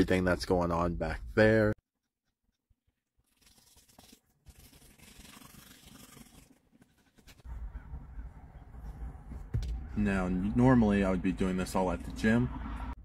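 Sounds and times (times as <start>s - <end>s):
toothbrush scrubbing teeth: 3.2s - 7.4s.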